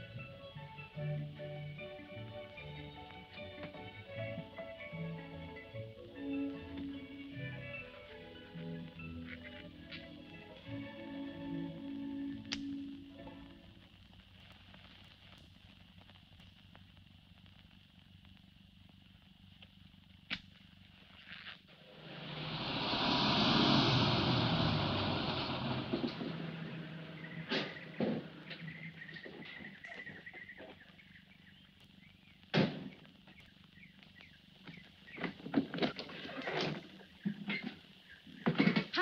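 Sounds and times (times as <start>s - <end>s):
car driving up: 21.7s - 29.6s.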